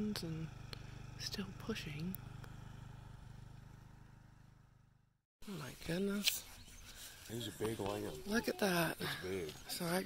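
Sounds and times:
low mechanical hum with flutter: 0:00.0 - 0:05.2.

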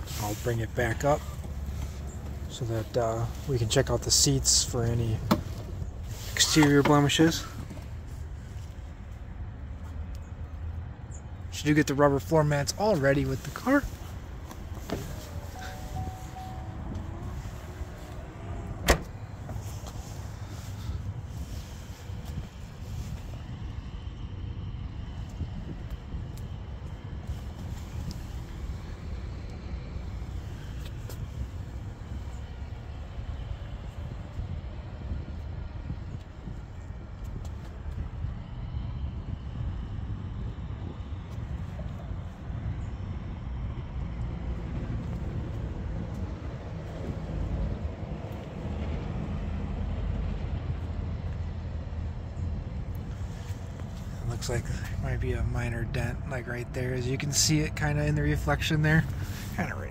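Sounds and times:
outdoor rumble and hiss: 0:00.0 - 0:59.9.

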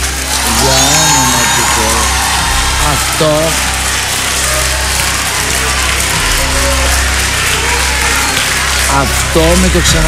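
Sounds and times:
audience applauding: 0:00.0 - 0:10.0
background music: 0:00.0 - 0:10.0.

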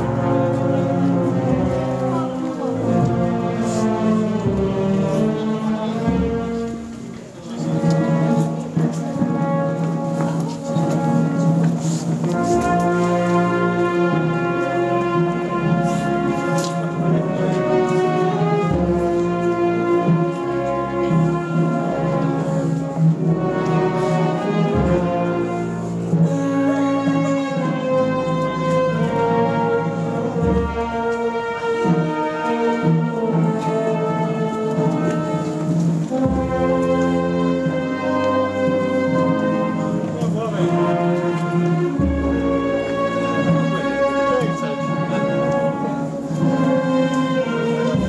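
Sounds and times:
brass band playing slow march: 0:00.0 - 0:48.0.

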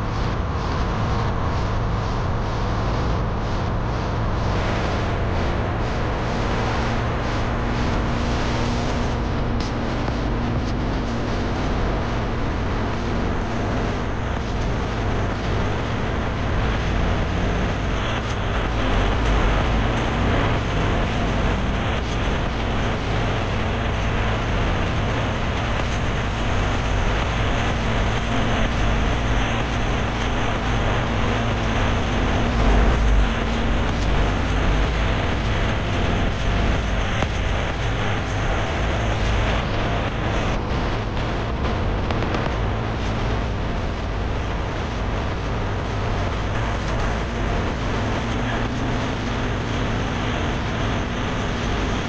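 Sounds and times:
car tyres and engine rumble: 0:00.0 - 0:52.0.

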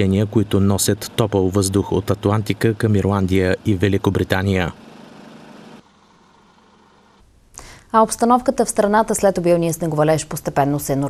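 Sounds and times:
lorry engines idling: 0:00.0 - 0:07.2.

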